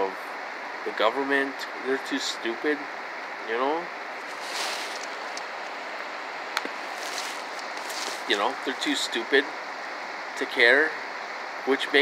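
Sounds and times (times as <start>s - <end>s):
steady background hiss: 0.0s - 12.0s
soft rush: 4.1s - 9.4s.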